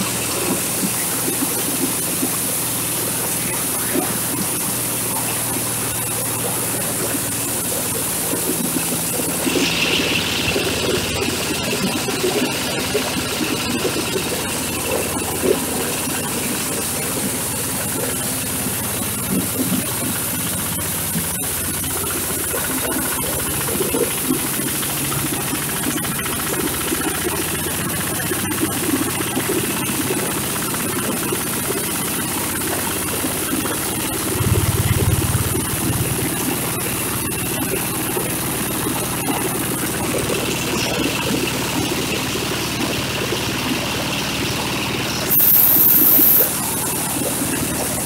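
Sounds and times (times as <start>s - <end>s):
diesel engine drone: 0.0s - 48.0s.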